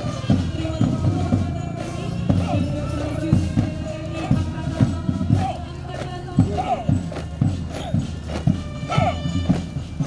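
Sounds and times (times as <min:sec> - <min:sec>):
boots marching on asphalt: 0:00.0 - 0:10.0
music: 0:00.0 - 0:10.0
voices: 0:00.0 - 0:10.0.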